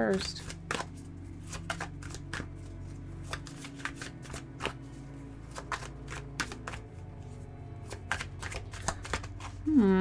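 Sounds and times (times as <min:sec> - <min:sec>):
cards being shuffled: 0:00.0 - 0:10.0.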